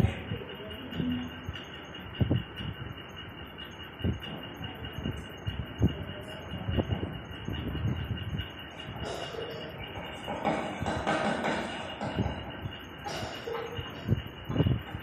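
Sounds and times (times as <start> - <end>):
hall background noise: 0.0 - 15.0.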